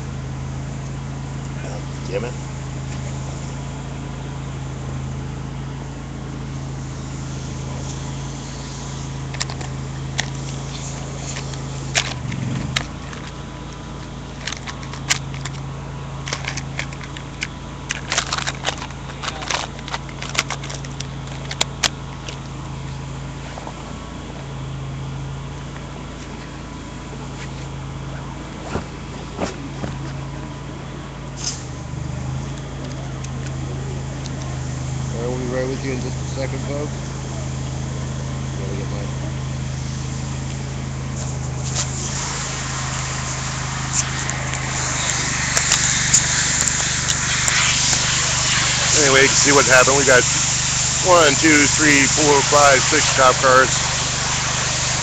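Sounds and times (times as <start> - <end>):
engine humming: 0.0 - 55.0.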